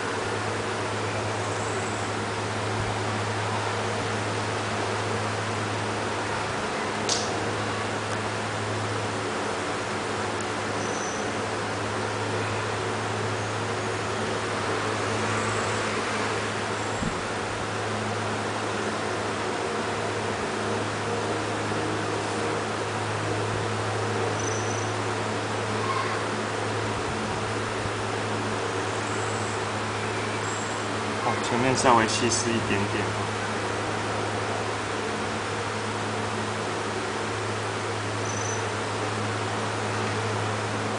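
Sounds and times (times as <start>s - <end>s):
constant low hum: 0.0s - 40.9s.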